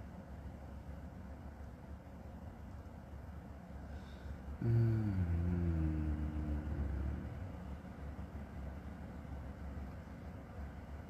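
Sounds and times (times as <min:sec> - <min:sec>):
low background rumble: 0:00.0 - 0:11.0
man humming low note: 0:04.6 - 0:07.8.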